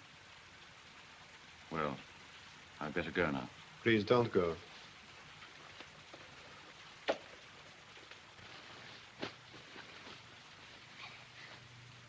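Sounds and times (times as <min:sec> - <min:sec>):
film soundtrack hiss: 0:00.0 - 0:12.0.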